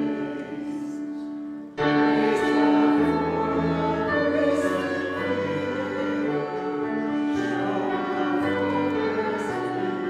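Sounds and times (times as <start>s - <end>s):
voices singing a hymn: 0.0s - 10.0s.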